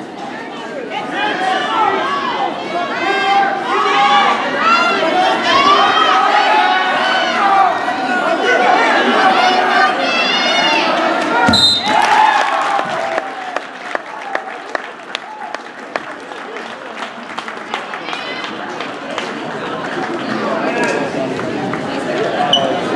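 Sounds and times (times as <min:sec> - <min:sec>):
spectators yelling: 0:00.9 - 0:14.6
people clapping: 0:10.9 - 0:22.5
whistle blast: 0:11.5 - 0:12.1.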